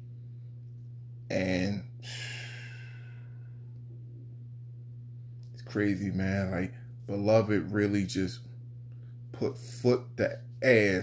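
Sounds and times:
low background hum: 0.0s - 11.0s
man sighing: 2.0s - 3.5s.

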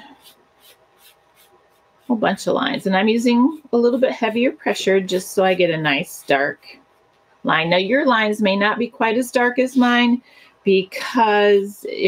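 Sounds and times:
pencil scratching on paper: 0.0s - 6.5s.

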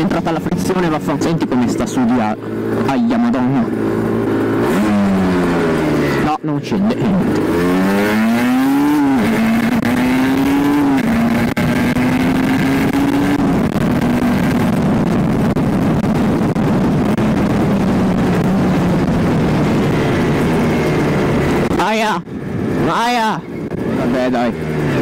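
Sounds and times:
motorcycle engine accelerating: 0.0s - 25.0s
wind rush: 7.1s - 25.0s.

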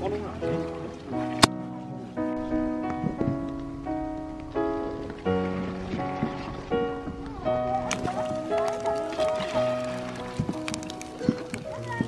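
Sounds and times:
music with long held notes: 0.0s - 12.0s.

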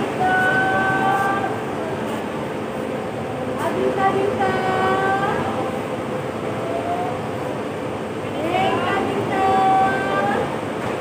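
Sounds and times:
bus terminal rumble: 0.0s - 11.0s.

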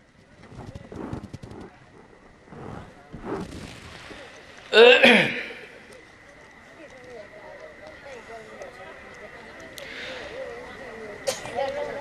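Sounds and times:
faint low voices: 4.0s - 12.0s.

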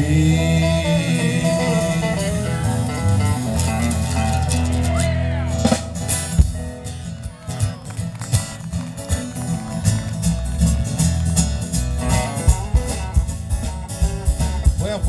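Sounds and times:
acoustic guitar: 0.0s - 15.0s
banjo: 0.0s - 15.0s
bass: 0.0s - 15.0s
electric guitar: 0.0s - 15.0s
drum hits: 12.2s - 15.0s.

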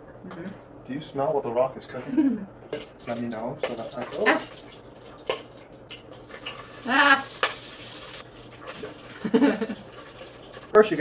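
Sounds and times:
butter sizzling in a pot: 2.8s - 11.0s.

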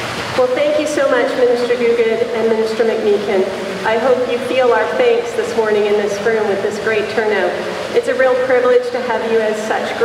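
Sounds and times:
woman talking into microphone: 0.4s - 10.0s.

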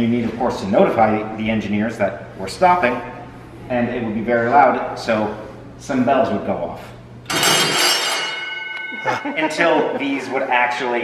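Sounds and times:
ship's signal bell ringing: 7.3s - 10.0s.

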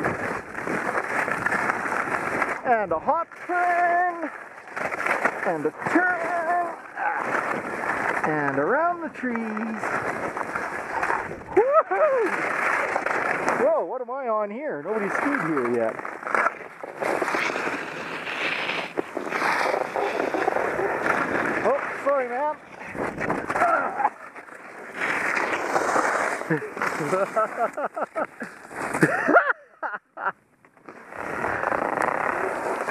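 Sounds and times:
skis scraping over snow: 0.0s - 13.8s, 14.8s - 29.4s, 30.8s - 32.9s
person exclaiming: 11.5s - 12.4s, 23.6s - 24.1s.

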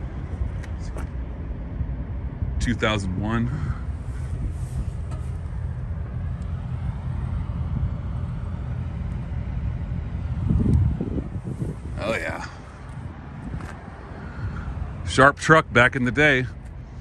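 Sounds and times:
low rumble of vehicles: 0.0s - 17.0s.

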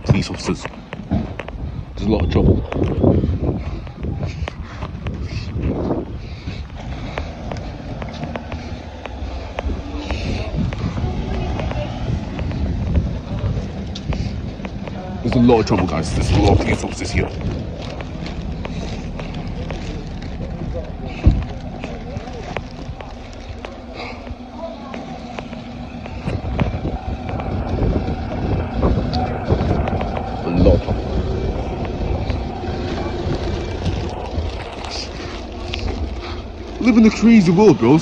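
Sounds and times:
vehicle engine hum: 0.0s - 38.0s
voices in background: 0.0s - 38.0s
wind rumbling on microphone: 0.0s - 38.0s.

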